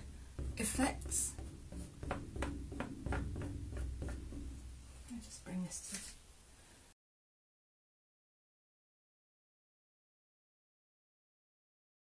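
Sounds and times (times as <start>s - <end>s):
palette knife tapping and scraping: 0.0s - 4.6s.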